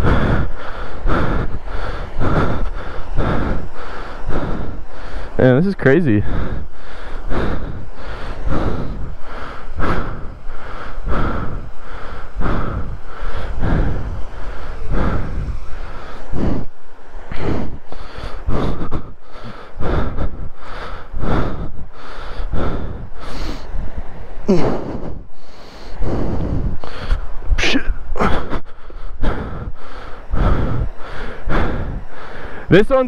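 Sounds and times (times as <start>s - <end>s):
person panting heavily: 0.0s - 33.0s.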